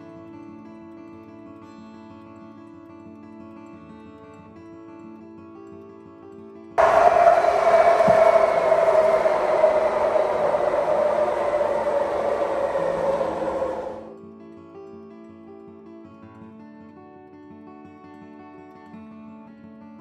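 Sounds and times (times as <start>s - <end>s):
train passing on viaduct: 6.8s - 14.2s.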